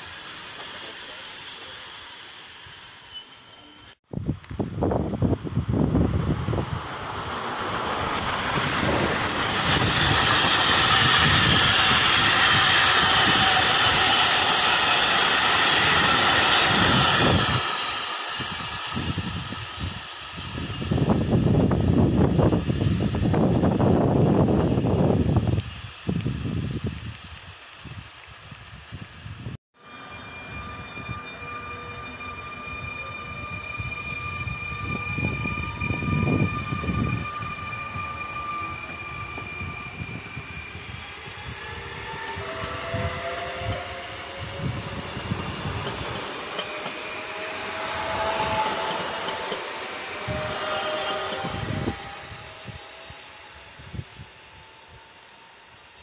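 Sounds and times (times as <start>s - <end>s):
freight train rumbling past: 0.0s - 27.5s, 28.6s - 56.0s
electric trains whining: 0.0s - 56.0s.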